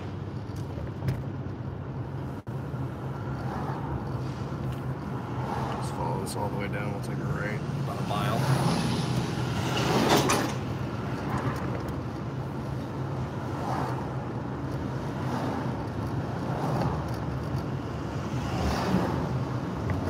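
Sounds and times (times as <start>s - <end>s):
car engine hum: 0.0s - 20.0s.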